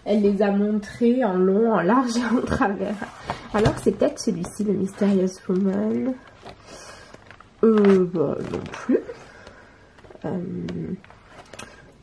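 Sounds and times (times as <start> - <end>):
paper rustling: 2.2 - 12.0.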